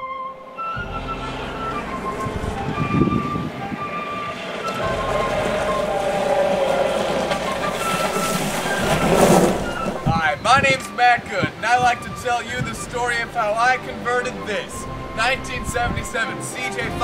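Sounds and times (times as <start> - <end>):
flute music: 0.0 - 17.0.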